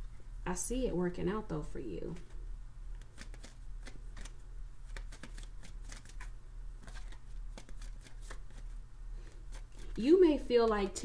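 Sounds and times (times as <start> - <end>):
cards being shuffled: 2.1 - 11.0.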